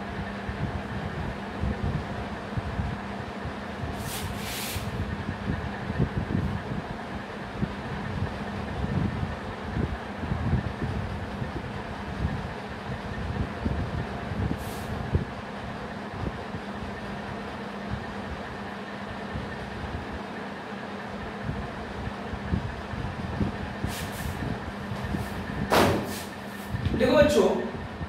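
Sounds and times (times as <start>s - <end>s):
low background hum and rumble: 0.0s - 28.0s.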